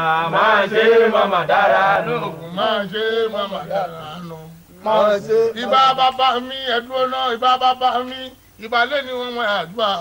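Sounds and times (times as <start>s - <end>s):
man chanting: 1.2s - 10.0s.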